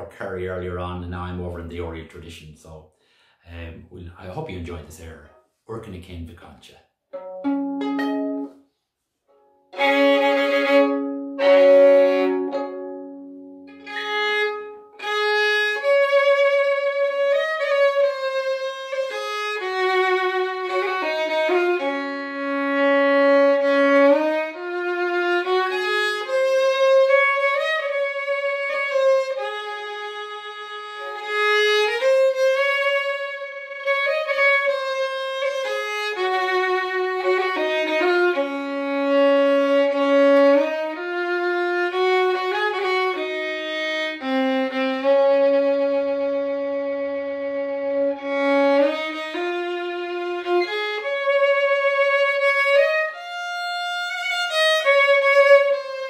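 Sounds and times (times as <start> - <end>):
solo fiddle playing slow air: 9.7 - 56.0.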